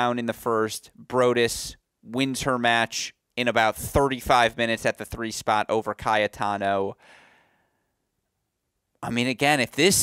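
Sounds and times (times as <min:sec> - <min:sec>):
faint breath: 0:07.0 - 0:08.1.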